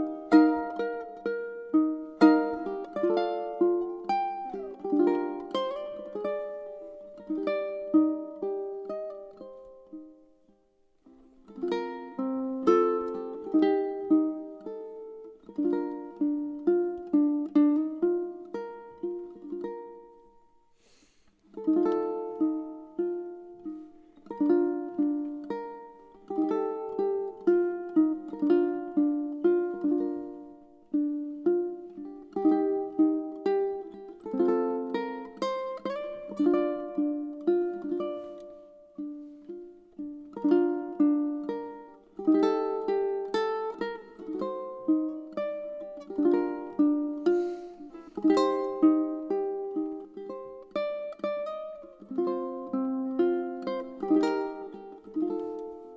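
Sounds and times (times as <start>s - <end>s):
fingerstyle ukulele melody: 0.0s - 55.9s.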